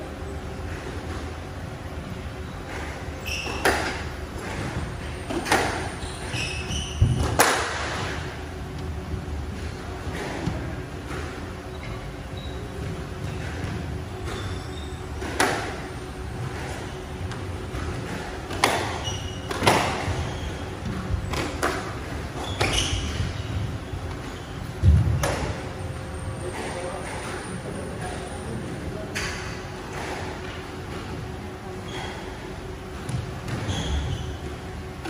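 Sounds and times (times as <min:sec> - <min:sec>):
shoe squeaks on wooden floor: 0:03.2 - 0:04.0, 0:05.4 - 0:07.4, 0:11.7 - 0:15.1, 0:18.6 - 0:21.4, 0:22.3 - 0:24.7, 0:33.0 - 0:34.5.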